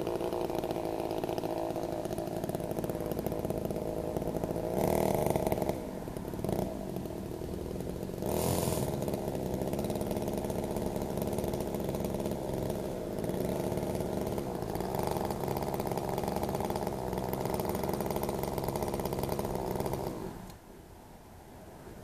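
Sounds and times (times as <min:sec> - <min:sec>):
chainsaw engine idling: 0:00.0 - 0:20.6.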